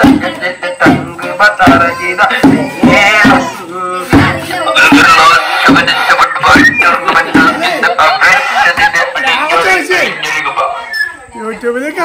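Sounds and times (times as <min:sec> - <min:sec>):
hand drum beats: 0:00.0 - 0:06.0
man singing through megaphone: 0:00.0 - 0:09.6.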